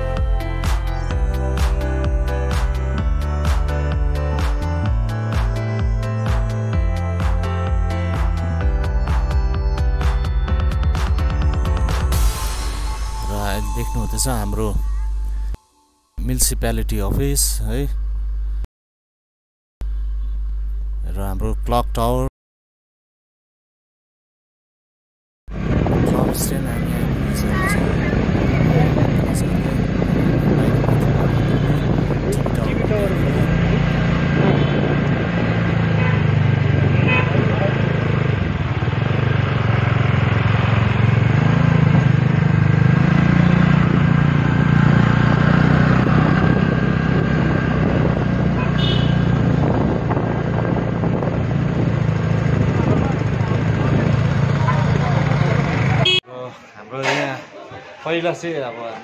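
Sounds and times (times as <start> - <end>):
motorcycle and car engines: 25.5 - 56.2
people's voices: 26.1 - 34.6, 52.6 - 59.0
car horns: 31.0 - 32.5, 34.1 - 38.0, 48.4 - 49.6, 55.8 - 56.3.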